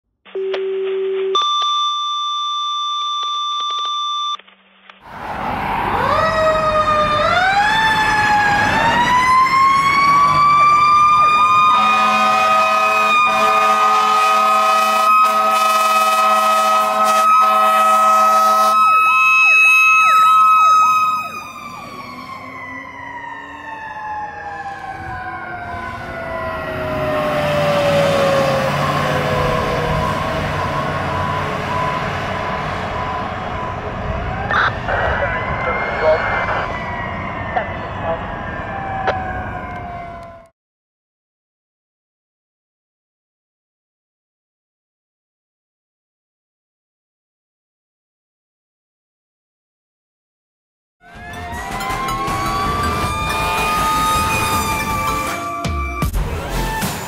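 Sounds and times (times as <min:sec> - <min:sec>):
electronic beep tone: 0:00.4 - 0:04.4, 0:51.3 - 0:56.4
pulsing siren: 0:05.1 - 0:40.5, 0:51.0 - 0:57.0
fast warbling siren: 0:05.2 - 0:40.5, 0:51.0 - 0:57.0
mechanical siren wailing: 0:05.2 - 0:40.5, 0:51.0 - 0:57.0
horn blasts: 0:11.7 - 0:19.0, 0:51.2 - 0:56.2.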